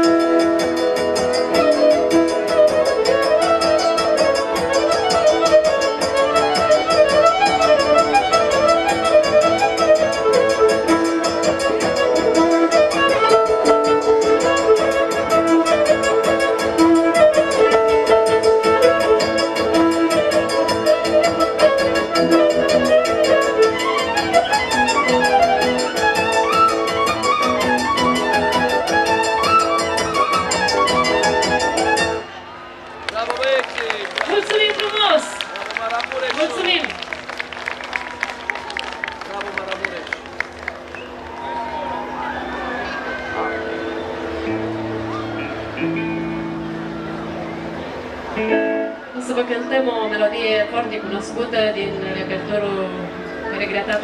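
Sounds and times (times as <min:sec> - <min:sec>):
fiddle playing folk melody: 0:00.0 - 0:32.5
band accompaniment: 0:00.0 - 0:54.0.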